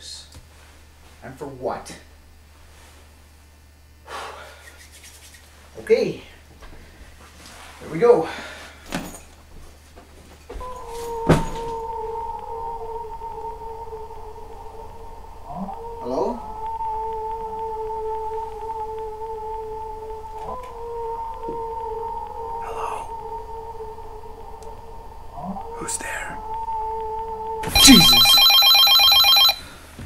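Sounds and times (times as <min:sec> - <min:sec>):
eerie drone hum: 0:10.5 - 0:29.5.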